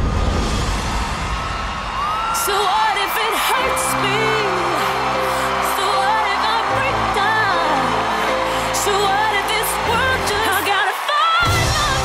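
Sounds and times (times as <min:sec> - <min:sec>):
studio audience cheering: 0:00.0 - 0:12.0
music: 0:00.1 - 0:12.0.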